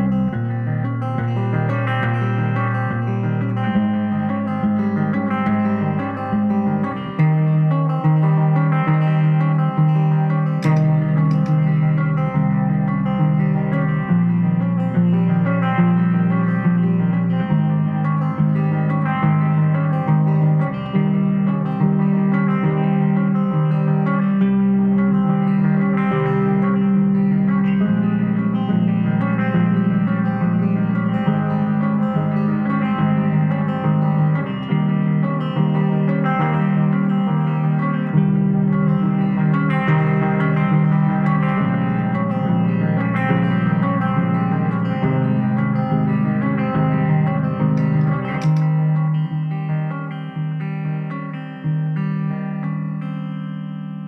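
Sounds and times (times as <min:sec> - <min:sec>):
solo electric guitar: 0:00.0 - 0:54.0.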